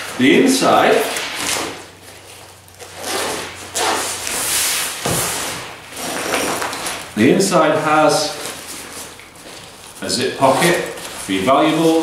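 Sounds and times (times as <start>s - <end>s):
nylon fabric rustling: 0.8s - 12.0s
zip pulled open: 2.9s - 4.4s, 5.9s - 7.0s.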